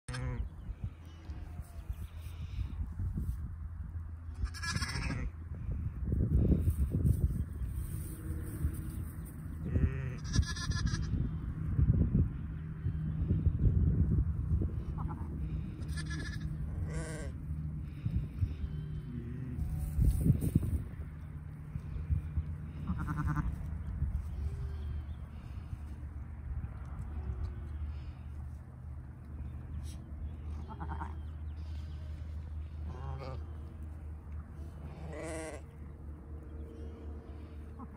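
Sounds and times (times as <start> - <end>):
sheep bleating: 4.3 - 5.3, 9.6 - 11.2, 15.0 - 17.4, 22.7 - 23.6, 30.6 - 31.2, 34.9 - 35.7.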